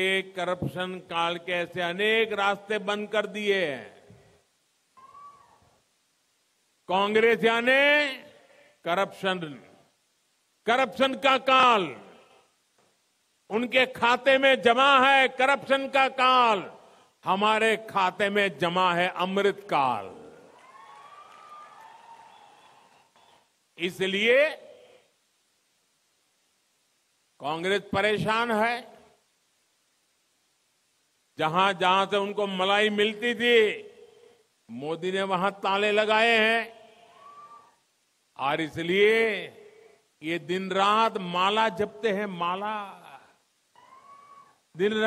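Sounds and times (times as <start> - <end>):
man's amplified speech: 0.0 - 4.0, 6.9 - 9.8, 10.6 - 12.4, 13.5 - 20.4, 23.8 - 25.0, 27.4 - 29.1, 31.4 - 34.0, 34.7 - 36.9, 38.4 - 43.4, 44.8 - 45.0
faint high-pitched call: 5.0 - 5.8, 43.8 - 44.6
crowd cheering and applause: 20.5 - 23.4.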